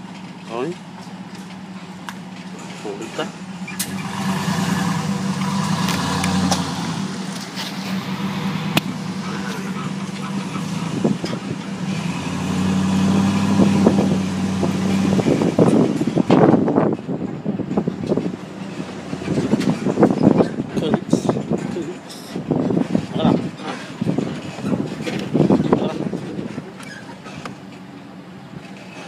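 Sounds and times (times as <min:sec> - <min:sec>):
buffeting noise: 0:00.0 - 0:29.0
engine humming: 0:00.0 - 0:29.0.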